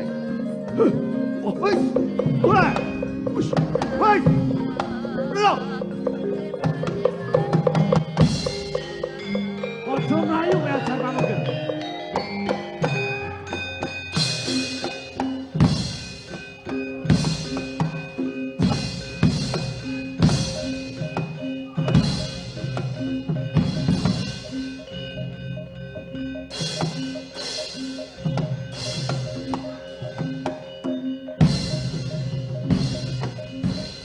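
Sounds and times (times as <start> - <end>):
gamelan music: 0.0 - 34.0
ringing metal notes: 0.0 - 34.0
drum strokes: 1.6 - 34.0.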